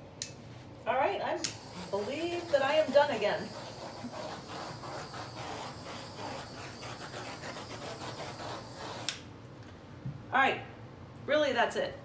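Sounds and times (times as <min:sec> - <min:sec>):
handheld tool hissing and pulsing: 0:01.4 - 0:09.2.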